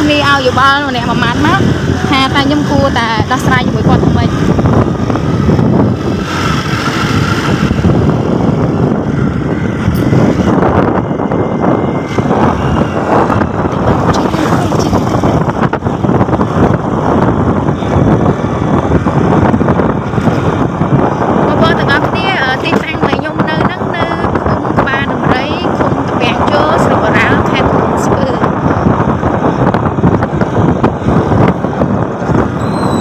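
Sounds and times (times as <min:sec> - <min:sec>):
motorbike engine running: 0:00.0 - 0:33.0
wind rumble on microphone: 0:00.0 - 0:33.0.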